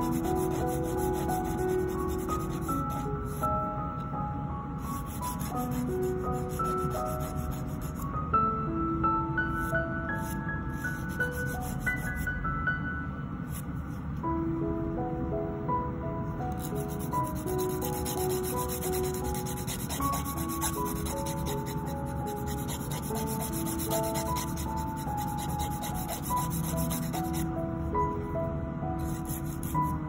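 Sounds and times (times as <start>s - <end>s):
soft melodic background music: 0.0s - 30.0s
nail file rasping on fingernail: 16.7s - 27.5s.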